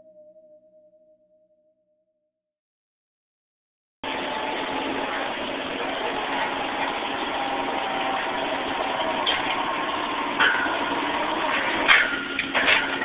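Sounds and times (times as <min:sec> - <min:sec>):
rig machinery running: 0:04.0 - 0:13.0
hydraulic power tongs: 0:04.1 - 0:13.0
sharp metallic clank: 0:10.4 - 0:13.0.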